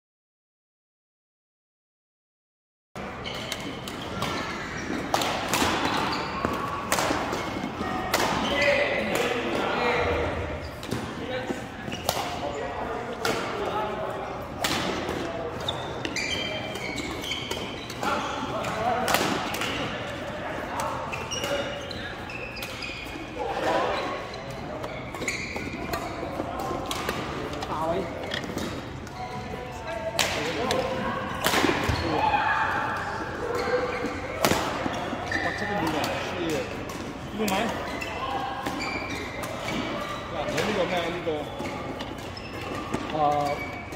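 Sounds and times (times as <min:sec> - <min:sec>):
rackets hitting shuttlecock: 0:03.3 - 0:09.6, 0:10.8 - 0:12.6, 0:14.5 - 0:20.1, 0:24.8 - 0:29.2, 0:30.1 - 0:37.9.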